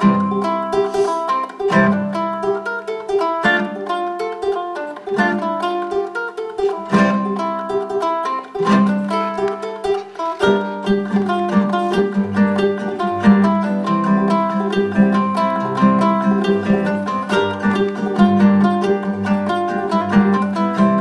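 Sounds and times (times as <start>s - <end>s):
classical guitar bass notes: 0.0s - 21.0s
ukulele plucked notes: 0.0s - 21.0s.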